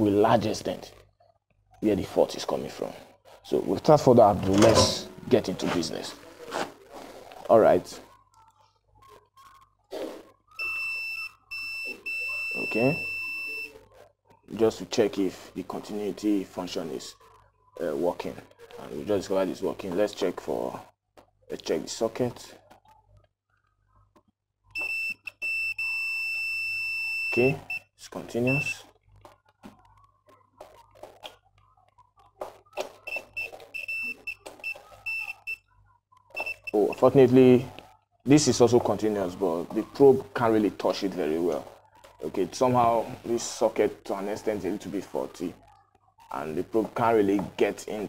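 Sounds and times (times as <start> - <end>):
multimeter continuity beep: 10.6 - 13.7, 24.8 - 28.8, 33.0 - 35.7, 36.4 - 37.2.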